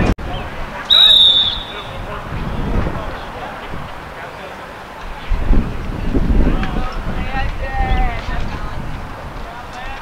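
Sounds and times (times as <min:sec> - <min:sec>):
referee whistle blast: 0:00.9 - 0:02.0.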